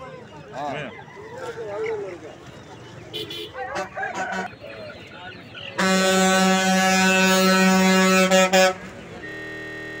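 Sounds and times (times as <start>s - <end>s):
vehicle horn blast: 5.8s - 10.0s
faint steady tone: 9.1s - 10.0s.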